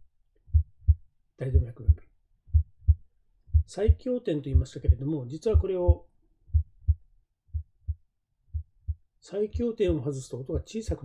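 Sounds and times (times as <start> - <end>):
heartbeat lub-dub: 0.5 - 11.0.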